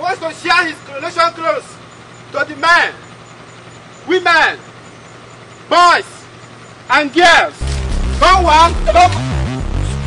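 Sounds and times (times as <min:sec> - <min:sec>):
music with deep bass: 0:07.6 - 0:10.0.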